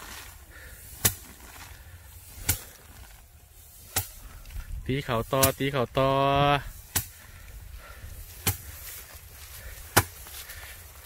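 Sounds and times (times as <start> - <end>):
rice stalks whacking wooden frame: 0.0 - 4.6, 5.2 - 6.0.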